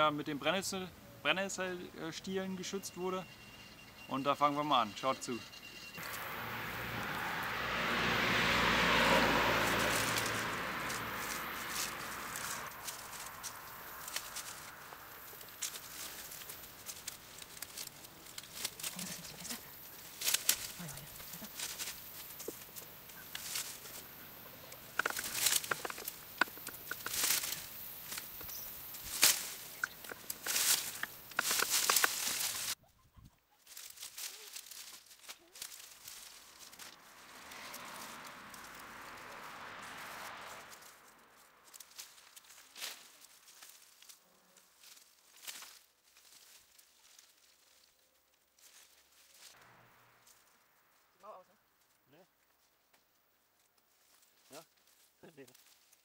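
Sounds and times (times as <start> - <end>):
dry stalks crackling and snapping: 6.0 - 7.5, 8.4 - 32.8, 33.6 - 56.0
dry soil being dug by hand: 9.9 - 32.8.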